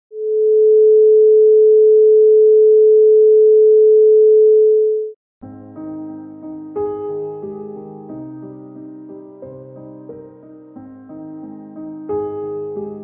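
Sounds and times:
electronic sine tone: 0.1 - 5.1
soft keyboard music: 5.4 - 13.0.

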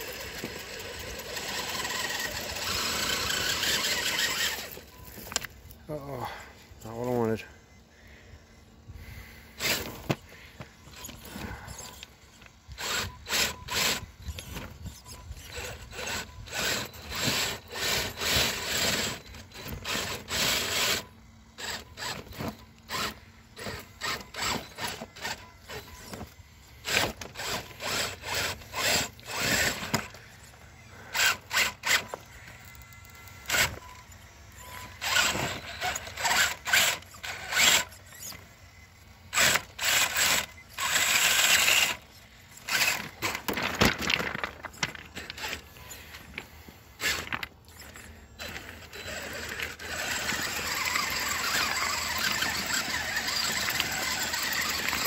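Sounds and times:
rough scraping and crunching: 0.0 - 7.5, 9.0 - 55.0.

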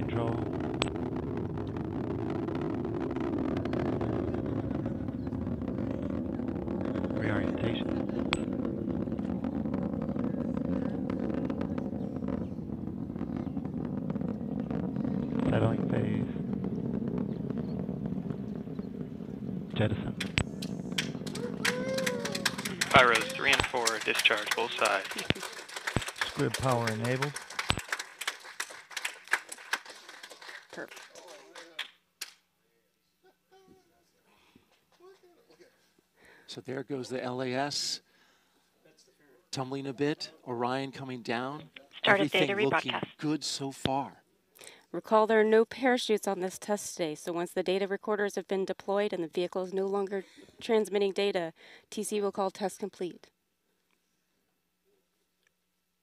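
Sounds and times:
rocket motor rumble: 0.0 - 27.9.

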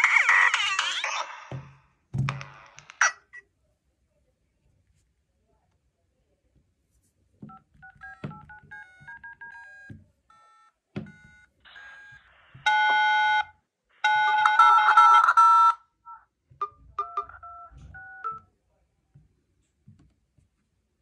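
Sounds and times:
keypad tone beeps: 10.4 - 13.4.

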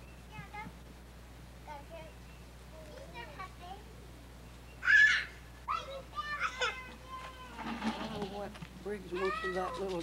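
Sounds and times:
high-pitched voices calling out: 4.8 - 8.5.

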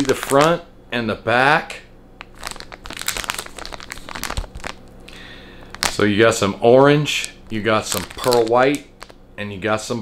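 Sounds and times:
plastic bag crinkling: 0.0 - 0.6, 2.2 - 9.2.

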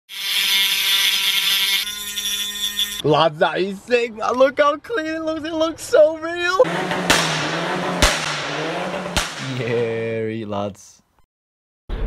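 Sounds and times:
rotary tool whining: 0.1 - 3.0.

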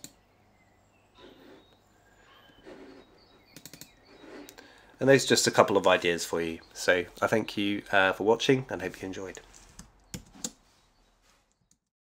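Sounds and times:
faint high chirps: 0.0 - 7.9.

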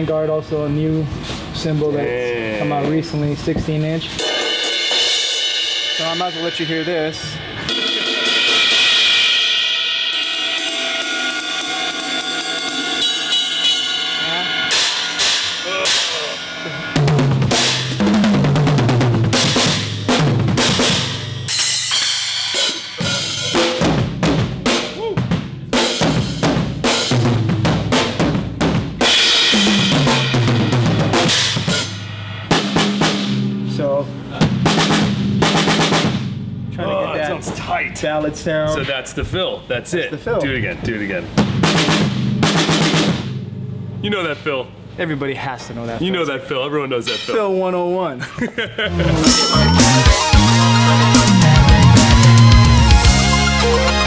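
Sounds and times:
drum kit fills: 2.8 - 38.2, 41.2 - 45.8, 48.9 - 54.0
cymbal ringing: 4.2 - 23.9, 29.1 - 37.4, 48.9 - 54.0.

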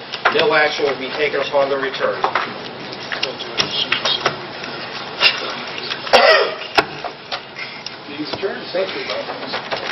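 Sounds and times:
person coughing: 6.1 - 6.8.

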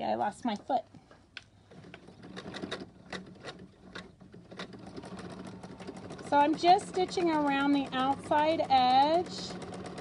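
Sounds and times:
sewing machine motor hum: 1.6 - 10.0.

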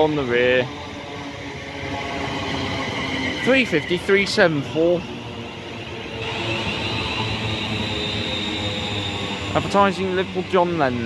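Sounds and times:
train wheel and motor noise: 0.0 - 11.0
faint high whine: 2.0 - 11.0.

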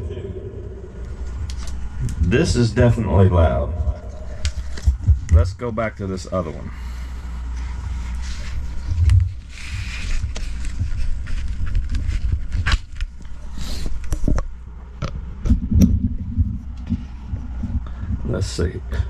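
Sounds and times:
steady low hum: 0.0 - 19.0
microphone cable scraping and rustling: 7.4 - 14.4, 15.4 - 18.2.

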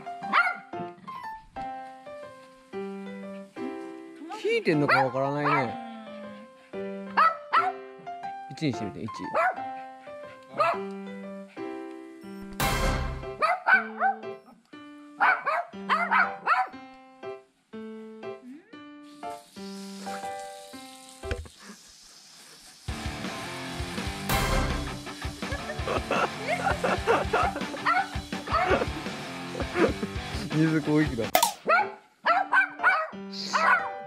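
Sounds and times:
light background music: 0.0 - 21.4, 22.9 - 34.0
dog barking: 0.2 - 0.7, 4.9 - 5.8, 7.2 - 7.8, 9.3 - 9.8, 10.5 - 11.0, 13.4 - 14.5, 15.2 - 16.8, 26.8 - 28.9, 31.6 - 34.0
small dog yapping: 13.4 - 14.2
background music with beat: 24.1 - 30.5.

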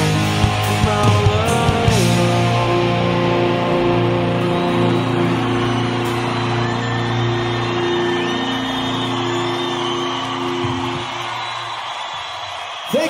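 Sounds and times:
rock band closing chord: 0.0 - 12.0
crowd cheering and whistling: 0.0 - 13.0.

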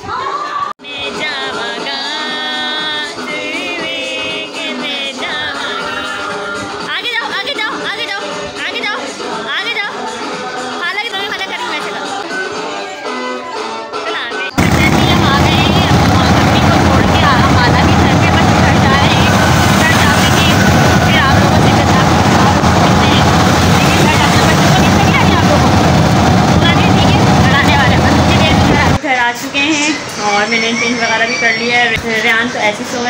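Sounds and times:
people chattering: 14.4 - 33.0
engine and road noise: 14.6 - 29.0.

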